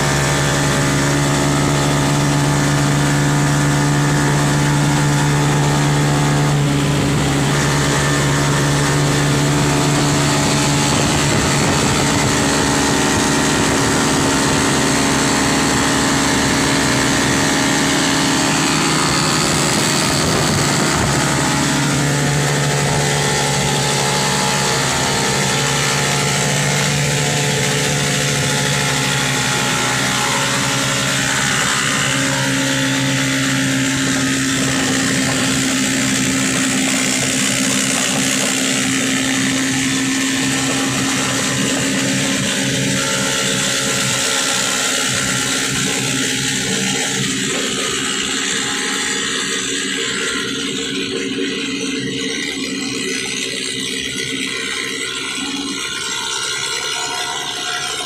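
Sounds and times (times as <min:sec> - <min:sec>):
motorcycle engine running: 0:00.0 - 0:58.0.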